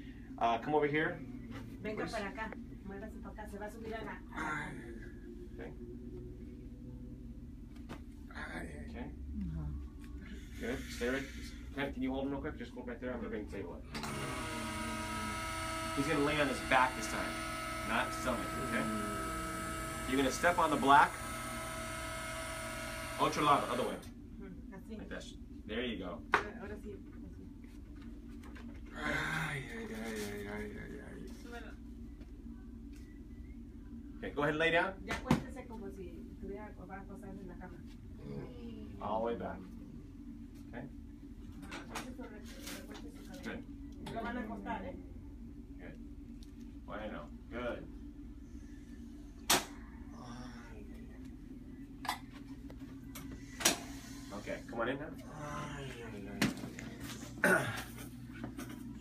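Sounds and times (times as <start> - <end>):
steady low hum: 0.0 - 59.0
electric motor humming and whining: 13.9 - 24.1.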